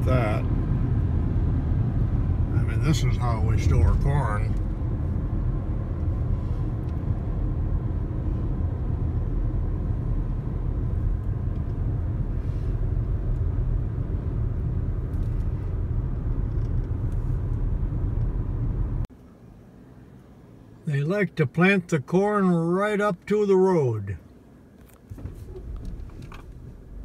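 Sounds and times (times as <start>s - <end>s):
road and engine rumble: 0.0s - 27.0s.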